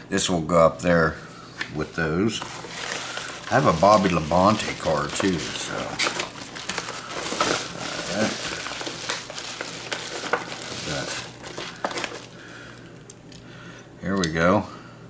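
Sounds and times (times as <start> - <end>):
padded envelope crinkling: 1.8 - 12.8.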